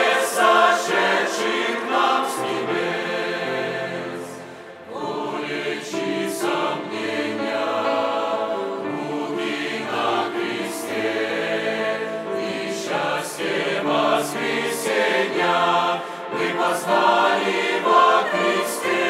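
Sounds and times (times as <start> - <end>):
mixed choir singing a hymn: 0.0 - 19.0.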